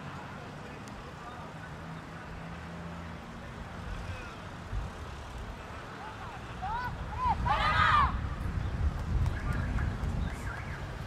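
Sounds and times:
faint distant shouts: 3.8 - 4.6, 5.5 - 8.4.

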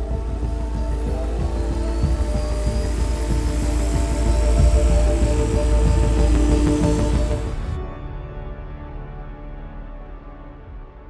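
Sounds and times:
machine humming with rising whine: 0.0 - 7.8
droning film score: 0.0 - 11.0.

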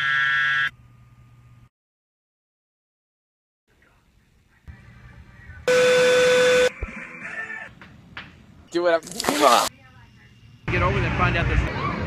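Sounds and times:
loud buzzing tone: 5.7 - 6.7.

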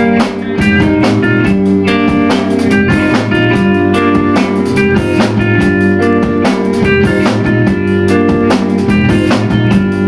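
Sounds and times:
drum kit beat: 0.0 - 10.0
electric guitars ringing chords: 0.0 - 10.0.

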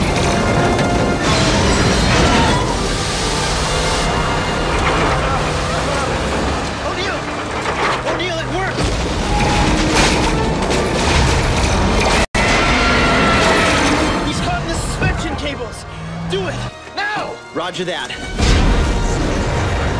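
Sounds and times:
booming impacts: 4.1 - 15.4, 18.3 - 19.9.

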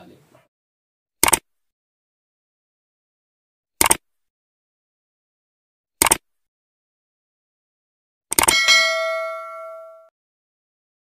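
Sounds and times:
bright bell ding: 8.5 - 10.1.

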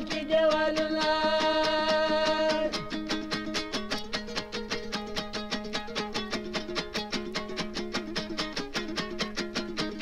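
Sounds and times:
plucked string instrument: 0.0 - 10.0.

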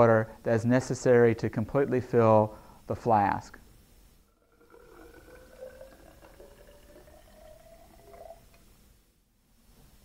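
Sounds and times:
water pouring into cylinder: 4.3 - 8.8.

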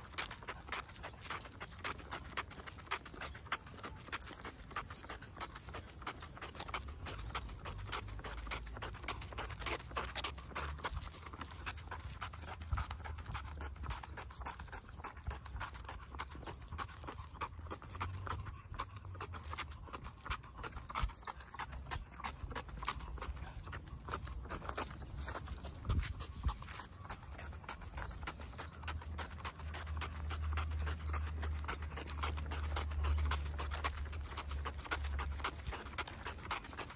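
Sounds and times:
dog paws pattering: 0.0 - 36.9
footsteps on asphalt: 0.0 - 36.9.

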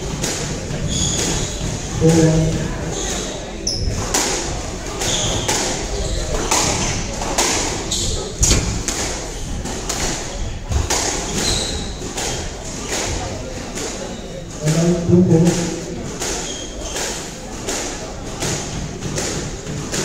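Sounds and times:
squash ball hitting rackets and walls: 0.0 - 20.0
shoe squeaks: 0.8 - 1.7, 2.8 - 4.0, 5.0 - 7.0, 7.9 - 8.7, 11.2 - 12.0, 16.3 - 17.3.

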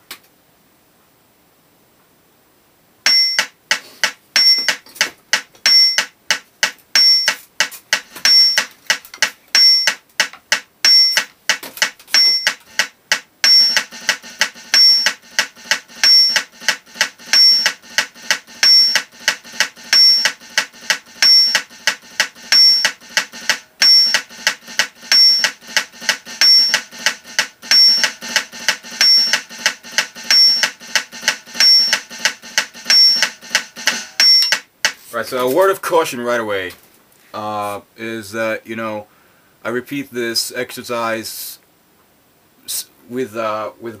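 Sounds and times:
metronome beeping: 3.1 - 34.7
drumsticks on snare pad: 3.1 - 35.9.

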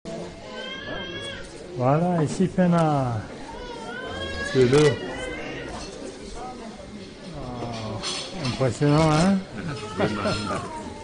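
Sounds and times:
background chatter of people: 0.1 - 11.0.

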